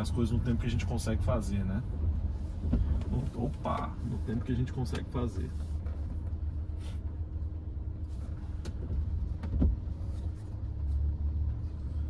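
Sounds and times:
car engine idling in cabin: 0.0 - 12.0.

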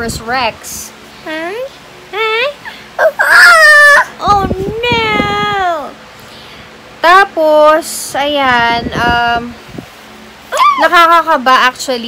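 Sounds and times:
toddler whining cry: 3.0 - 4.2, 10.5 - 10.9.

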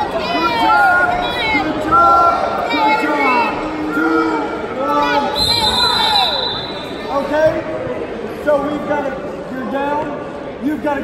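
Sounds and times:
voices shouting in a gym: 0.0 - 11.0.

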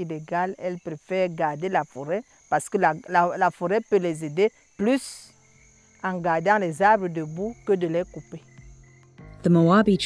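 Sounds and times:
cricket trilling: 0.0 - 10.0.

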